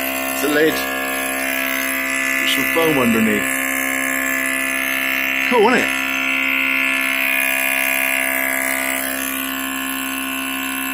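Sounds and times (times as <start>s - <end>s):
vacuum pump humming and whining: 0.0s - 10.9s.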